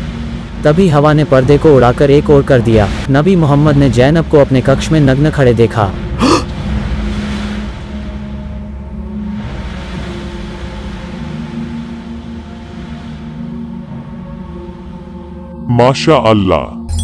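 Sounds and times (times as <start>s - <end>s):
ominous low drone music: 0.0s - 17.0s.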